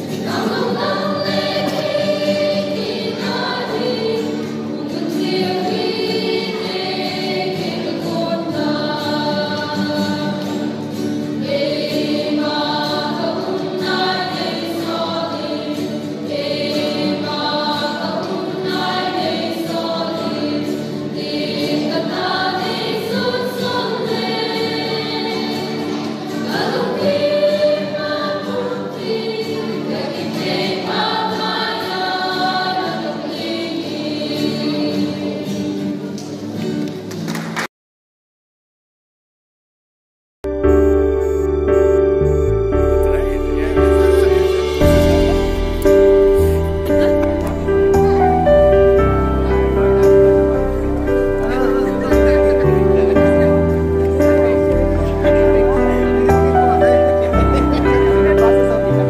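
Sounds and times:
choir singing a hymn: 0.0 - 36.4, 41.2 - 59.0
acoustic guitar: 0.0 - 37.6, 40.4 - 59.0.

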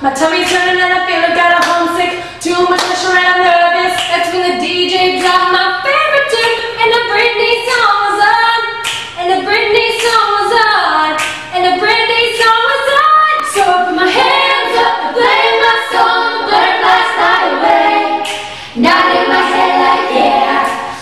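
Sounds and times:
a cappella group singing: 0.0 - 21.0.

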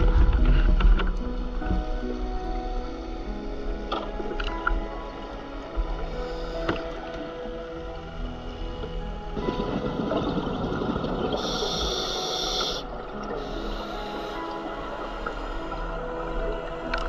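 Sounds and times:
background music of held tones: 0.0 - 17.0.

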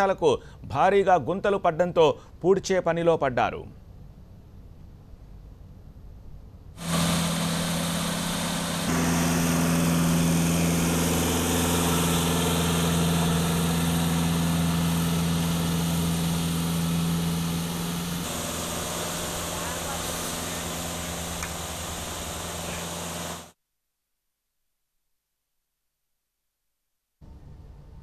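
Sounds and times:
road roller engine running: 6.8 - 23.6.

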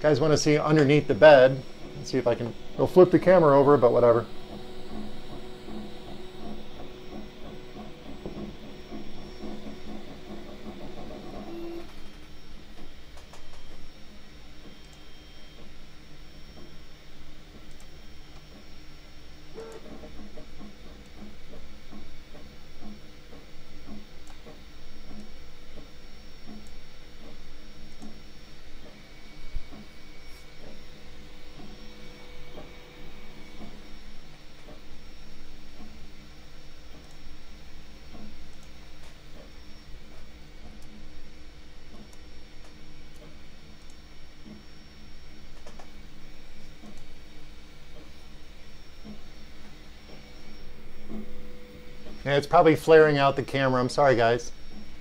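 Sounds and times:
print head ticking: 0.0 - 12.0
cooling fan hum: 0.0 - 55.0
stepper motors whirring: 0.0 - 55.0.

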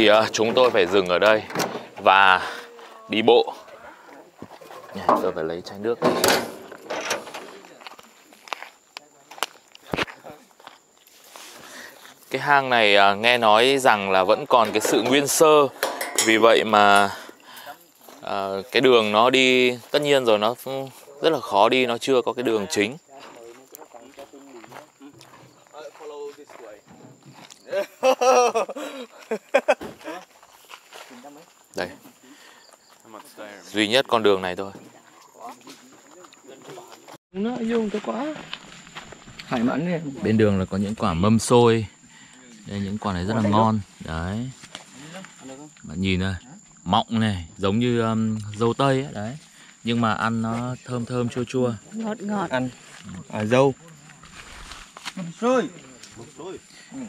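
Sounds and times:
footsteps: 0.0 - 12.6, 14.5 - 21.5, 23.0 - 27.7, 28.8 - 39.8, 43.2 - 45.6, 49.3 - 56.8
outdoor background noise: 0.0 - 57.0.

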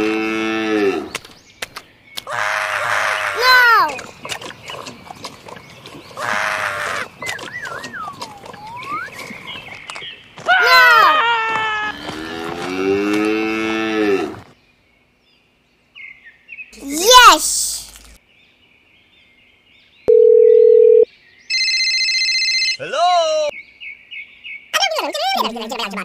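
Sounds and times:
cow mooing: 0.0 - 1.1, 11.8 - 14.4
cartoonish call: 2.3 - 4.0, 10.5 - 12.0.

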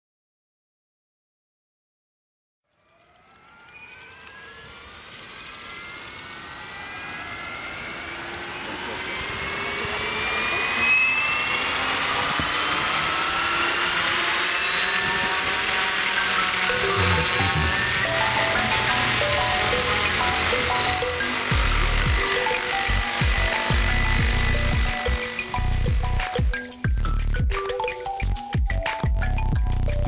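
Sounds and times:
engine-like whine rising in pitch: 2.7 - 27.4.

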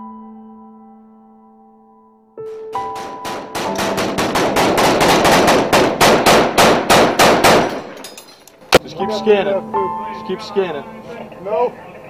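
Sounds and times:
rapid gunfire: 2.8 - 8.0.

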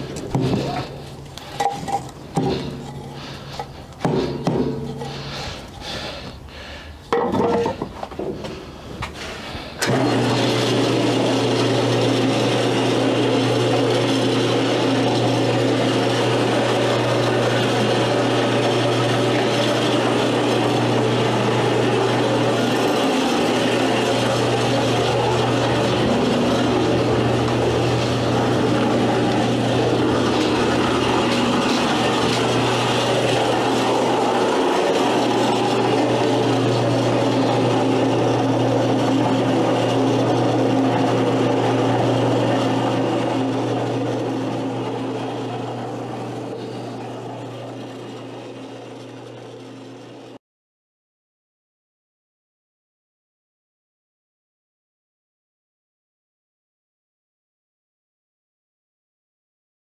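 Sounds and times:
sand churning and scraping: 0.0 - 6.2, 7.8 - 47.7
electric motor humming: 9.8 - 50.3.

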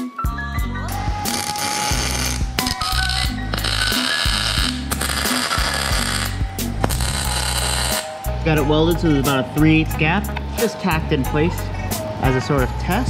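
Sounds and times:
background music: 0.0 - 13.0
welder crackling hiss: 1.1 - 8.2.

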